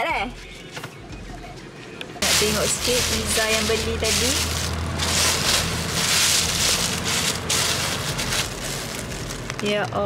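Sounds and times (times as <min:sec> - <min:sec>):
plastic bag crinkling: 0:02.2 - 0:10.0.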